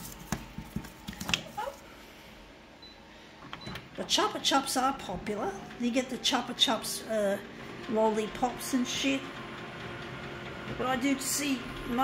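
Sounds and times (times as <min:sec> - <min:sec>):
photocopier motor whirring: 0:04.9 - 0:12.0.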